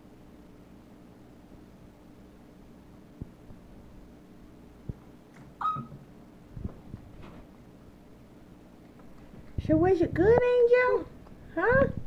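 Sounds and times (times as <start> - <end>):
monkey high squeak: 5.6 - 6.0.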